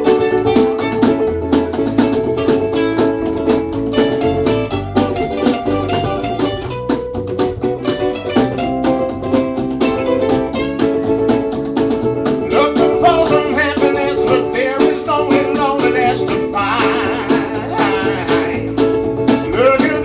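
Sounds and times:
guitar: 0.0 - 20.0
ukuleles strumming: 0.0 - 20.0
wavering lead melody: 0.0 - 20.0.

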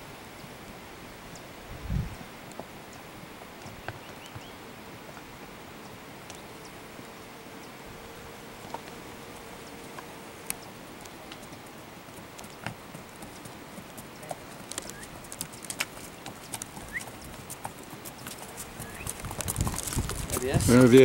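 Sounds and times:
horse hooves clip-clopping on dirt: 0.0 - 21.0.

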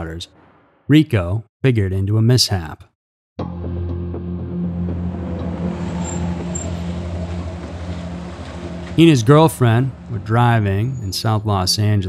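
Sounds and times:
car engine droning: 3.8 - 12.0
road noise hiss: 4.9 - 11.3.

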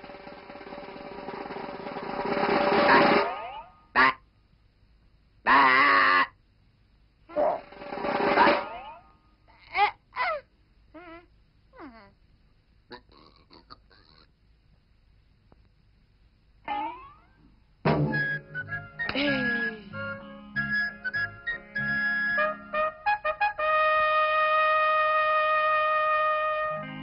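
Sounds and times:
music: 0.0 - 3.3, 7.6 - 8.8, 17.9 - 27.0.

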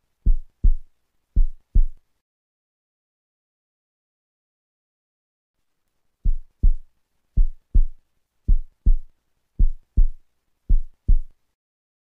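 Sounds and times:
heartbeat thumps: 0.2 - 2.0, 6.2 - 11.3.

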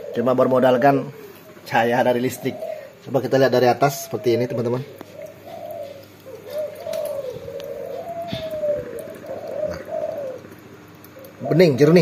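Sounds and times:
dove cooing: 0.0 - 12.0
faint clicks: 5.0 - 11.4.

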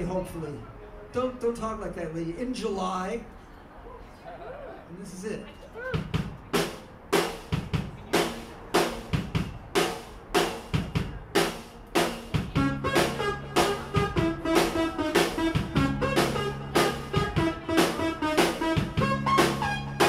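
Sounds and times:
snare and bass drum hits: 6.0 - 19.7
band instruments sustained notes: 12.2 - 20.0.

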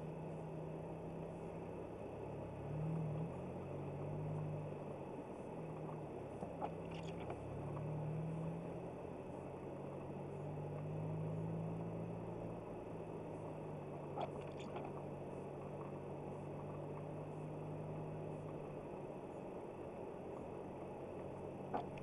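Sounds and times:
car engine and tyre noise: 0.0 - 22.0
faint clicks: 5.7 - 7.9, 14.1 - 16.0, 21.6 - 22.0.

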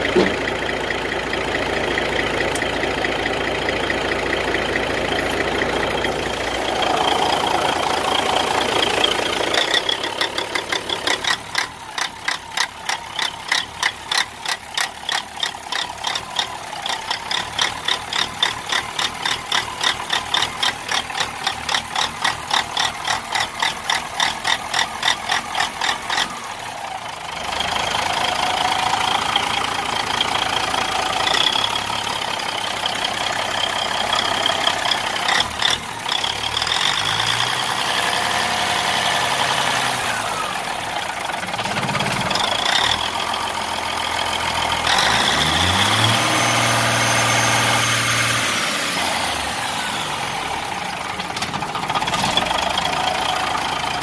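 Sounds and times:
high engine whine: 0.0 - 14.0
diesel engine running unevenly: 0.0 - 54.0.

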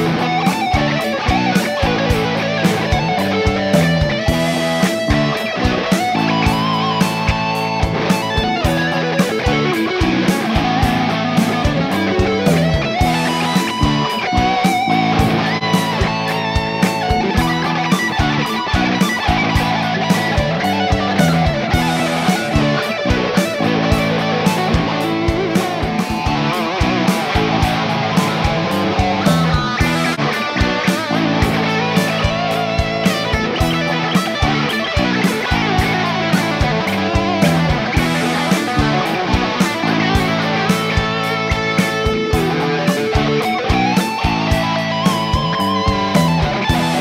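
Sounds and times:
backing track with bass and beat: 0.0 - 47.0
overdriven electric guitar lead: 0.0 - 47.0.

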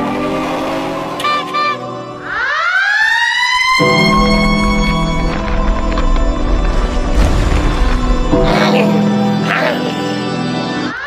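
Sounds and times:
siren-like rising wail: 0.0 - 11.0
low music: 3.6 - 11.0.

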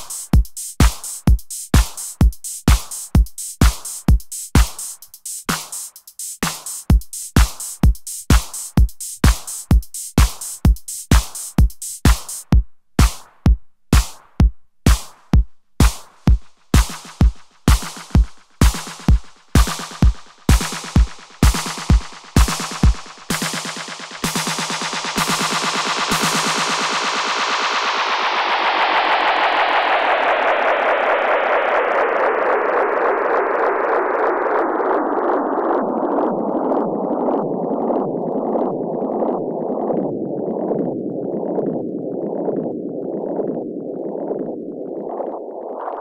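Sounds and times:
kick drum hits: 11.1 - 23.1.

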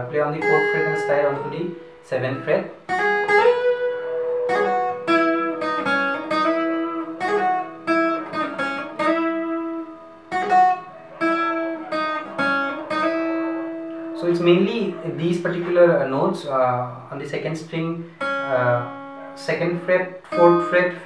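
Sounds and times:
acoustic guitar melody: 0.0 - 21.0.

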